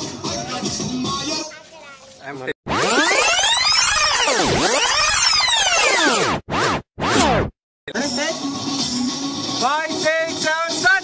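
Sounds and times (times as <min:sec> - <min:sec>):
electronic sweep sound effect: 0:02.7 - 0:07.6.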